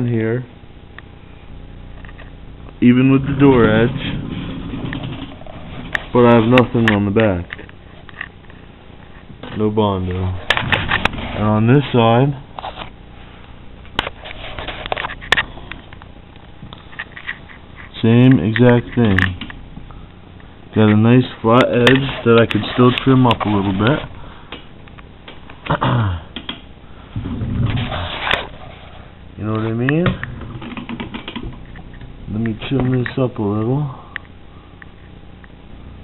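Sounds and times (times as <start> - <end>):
rustling and scraping: 3.0 - 19.9, 20.9 - 24.2, 27.1 - 30.8.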